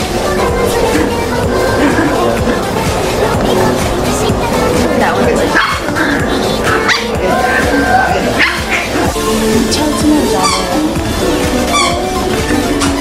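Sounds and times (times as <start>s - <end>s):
background music: 0.0s - 13.0s
small dogs yipping and barking: 5.4s - 9.2s, 10.3s - 11.0s, 11.6s - 13.0s.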